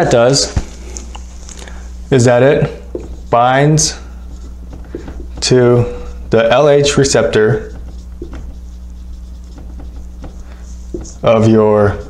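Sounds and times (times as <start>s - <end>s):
marker squeaking on whiteboard: 2.7s - 12.0s.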